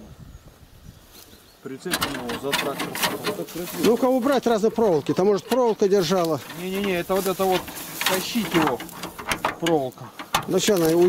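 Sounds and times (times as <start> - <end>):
rustles and clicks of handling: 1.2 - 11.0
men talking quietly: 1.6 - 11.0
man speaking: 1.7 - 8.9.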